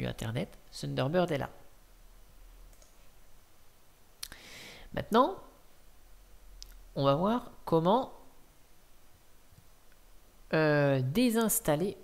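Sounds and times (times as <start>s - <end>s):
low steady hiss: 0.0s - 12.0s
computer mouse click: 2.7s - 3.0s.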